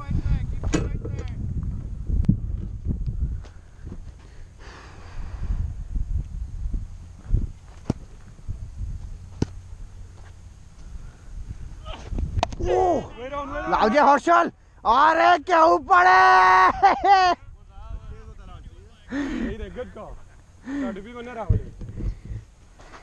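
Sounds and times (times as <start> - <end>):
wind buffeting microphone: 0.0 - 10.2, 10.8 - 13.6, 17.0 - 18.9, 21.4 - 22.6
low rumble: 0.0 - 12.7.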